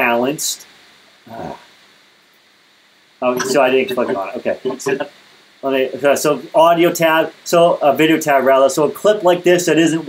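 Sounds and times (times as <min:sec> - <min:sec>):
brief voice-like sound: 0:03.4 - 0:05.1.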